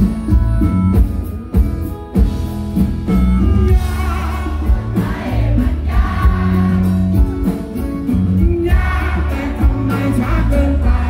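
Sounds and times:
live rock band playing: 0.0 - 11.0
man singing: 3.7 - 5.0, 8.1 - 11.0.

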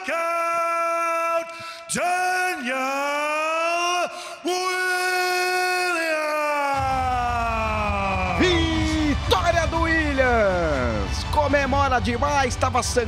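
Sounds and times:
low bass music: 6.8 - 13.0.

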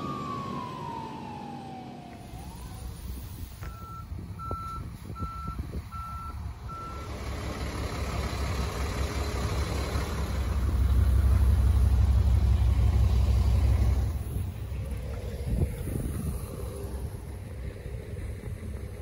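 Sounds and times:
truck reversing alarm beeping: 0.0 - 7.4
low rumble: 9.0 - 19.0.

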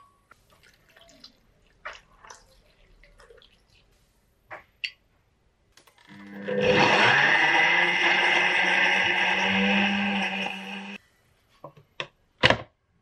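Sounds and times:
blender motor running: 6.1 - 11.0.

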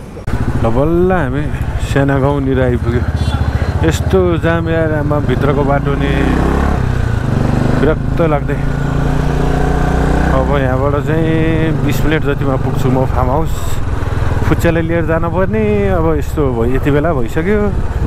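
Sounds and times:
motorcycle engine running: 0.2 - 18.0.

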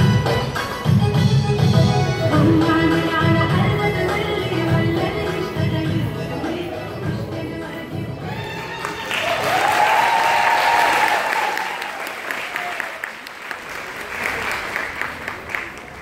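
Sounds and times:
music: 0.0 - 9.8
audience cheering: 8.3 - 14.8
audience applauding: 8.5 - 16.0.

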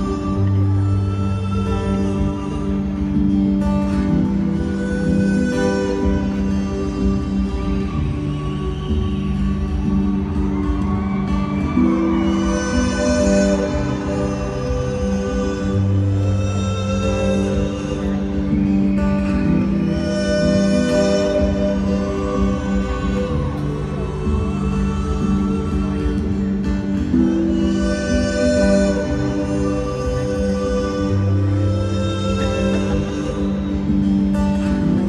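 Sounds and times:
amplified acoustic guitar music: 0.0 - 35.0.

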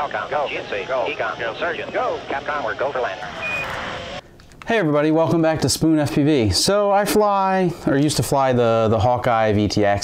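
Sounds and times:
rushing noise: 0.0 - 4.2.

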